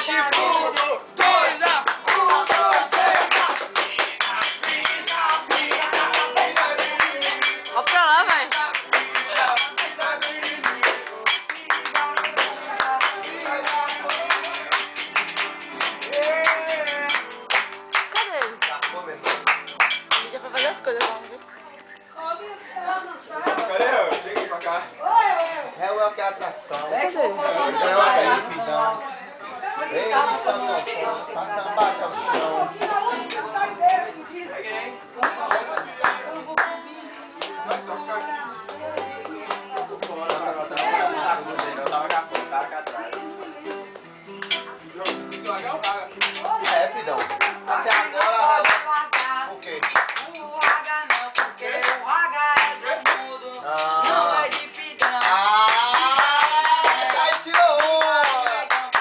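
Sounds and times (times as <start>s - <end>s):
people singing along: 0.0s - 15.2s, 36.4s - 41.9s, 46.5s - 59.0s
group hand clapping: 0.0s - 21.4s, 23.5s - 24.8s, 31.8s - 33.1s, 35.2s - 36.8s, 37.4s - 38.0s, 38.6s - 59.0s
strummed acoustic guitar: 0.0s - 21.5s, 35.0s - 58.4s
voices talking and exclaiming: 20.2s - 59.0s.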